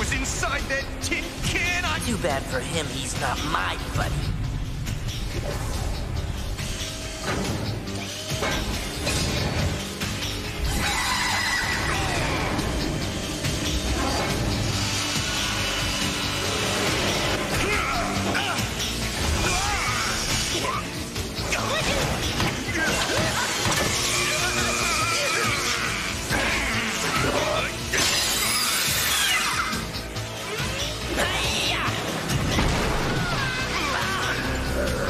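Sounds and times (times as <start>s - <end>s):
cartoon background music: 0.0s - 35.0s
mechanical whirring and grinding: 4.6s - 31.1s.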